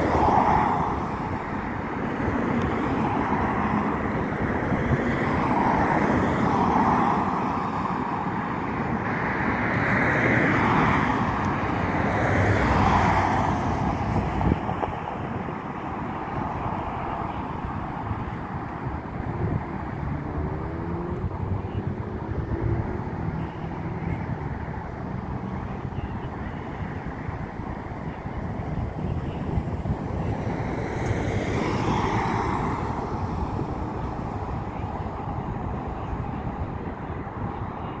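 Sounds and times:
road traffic rumble: 0:00.0 - 0:38.0
wind noise on microphone: 0:00.0 - 0:38.0.

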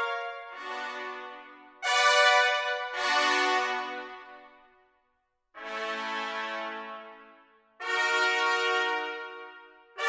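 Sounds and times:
trumpet ensemble marcato chords: 0:00.0 - 0:04.5, 0:05.6 - 0:10.0.

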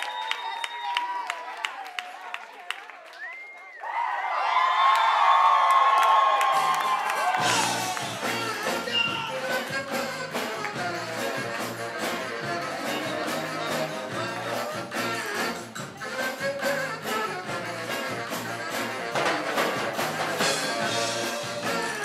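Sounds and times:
drums: 0:05.9 - 0:22.0
saxophones: 0:07.2 - 0:22.0
electric bass guitar: 0:07.4 - 0:22.0.

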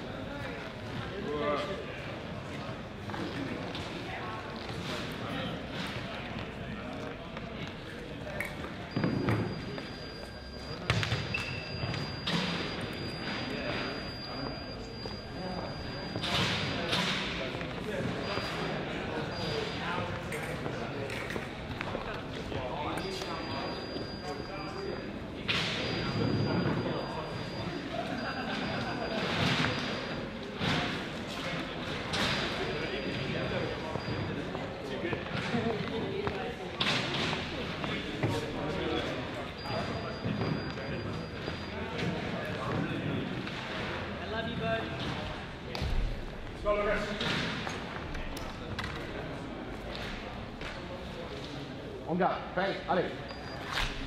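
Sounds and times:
echoing sports hall ambience: 0:00.0 - 0:54.0.

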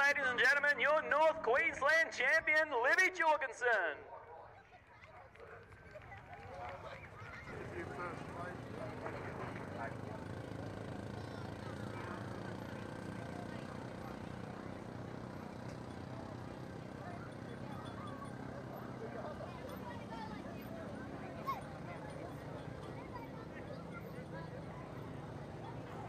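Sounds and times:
faint voices chatting: 0:04.2 - 0:26.0.

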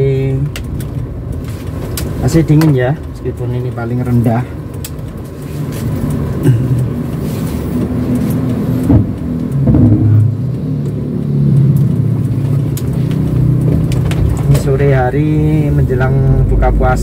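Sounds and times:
car engine running: 0:00.0 - 0:17.0
road noise: 0:00.0 - 0:17.0.

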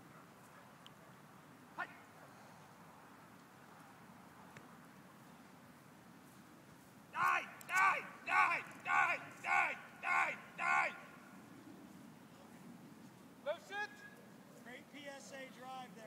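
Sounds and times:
person making rising calls: 0:07.2 - 0:11.1.

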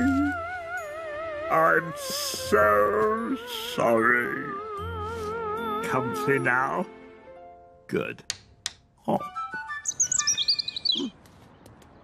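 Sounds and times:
background music notes: 0:00.0 - 0:08.1
cartoon bird chirping: 0:09.7 - 0:11.1.

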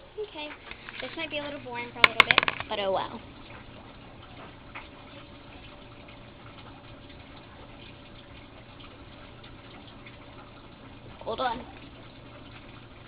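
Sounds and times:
running water: 0:00.0 - 0:13.0.

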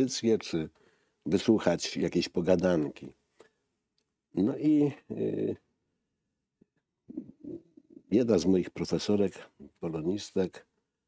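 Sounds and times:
man's low hesitant vocal sounds: 0:07.1 - 0:08.1.

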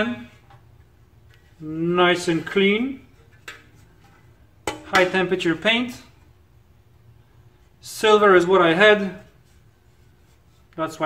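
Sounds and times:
soft noise: 0:00.0 - 0:11.0.

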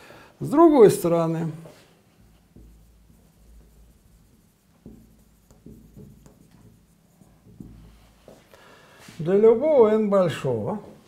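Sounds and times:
marker writing on whiteboard: 0:01.6 - 0:08.5.

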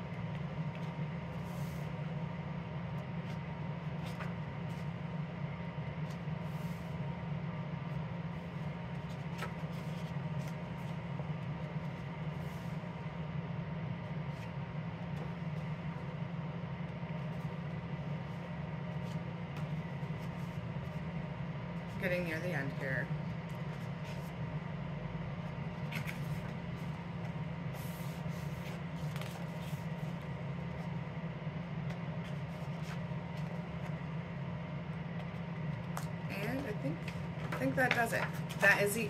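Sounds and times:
low room hum: 0:00.0 - 0:39.0
paper pages rustling: 0:08.9 - 0:11.0, 0:25.8 - 0:30.9, 0:31.8 - 0:34.0, 0:35.9 - 0:38.8.

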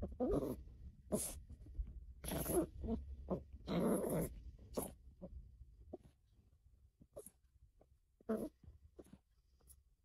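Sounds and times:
small dog play-growling: 0:00.0 - 0:06.2, 0:07.0 - 0:07.4, 0:08.1 - 0:09.8.

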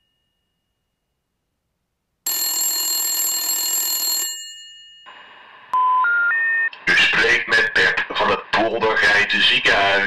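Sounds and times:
telephone ringing: 0:02.3 - 0:05.2.

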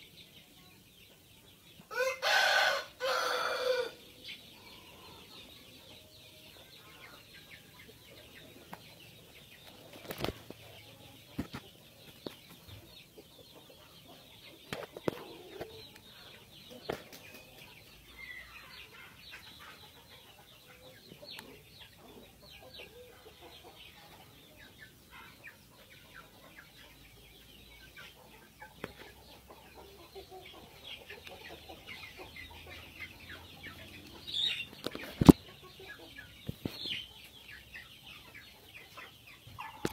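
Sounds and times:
chickens clucking: 0:00.0 - 0:39.9.

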